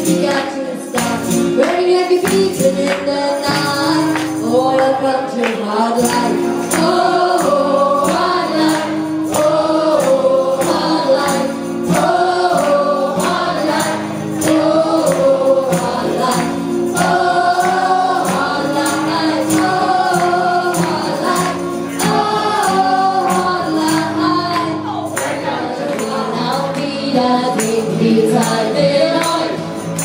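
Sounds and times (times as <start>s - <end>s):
strummed acoustic guitars: 0.0s - 30.0s
tambourine beat: 0.0s - 30.0s
women singing together: 0.0s - 30.0s.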